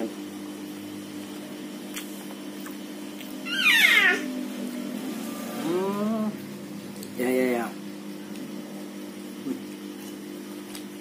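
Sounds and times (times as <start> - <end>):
steady low hum: 0.0 - 11.0
cat meowing: 3.5 - 4.3.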